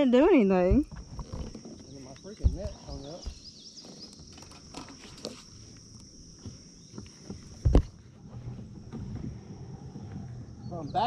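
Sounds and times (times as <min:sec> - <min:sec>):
insects droning: 0:00.0 - 0:11.0
knocks and rustles in kayak: 0:00.6 - 0:10.6.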